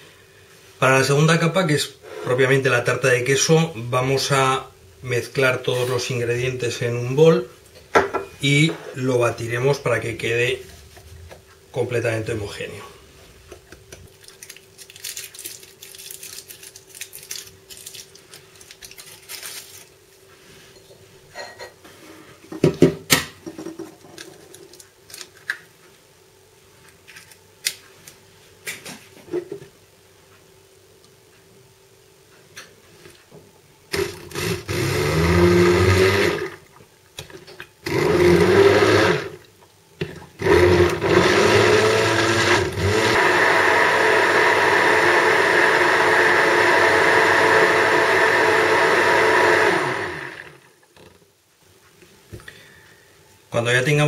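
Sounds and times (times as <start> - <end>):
hand blender running: 33.9 - 36.6, 37.8 - 39.4, 40.4 - 50.7.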